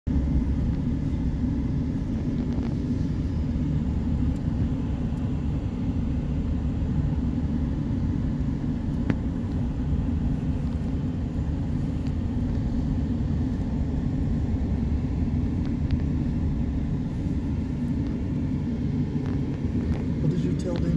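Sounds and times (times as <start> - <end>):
car road and engine rumble: 0.1 - 20.9.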